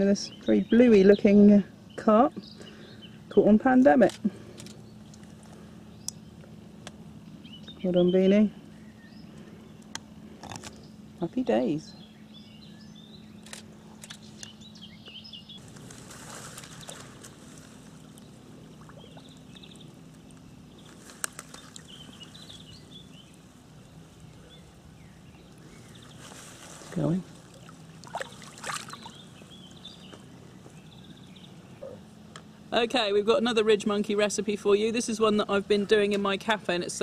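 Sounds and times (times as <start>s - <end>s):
faint steady hum: 0.0s - 37.0s
small birds chirping: 0.0s - 37.0s
water splashing: 15.8s - 23.6s, 25.4s - 29.4s.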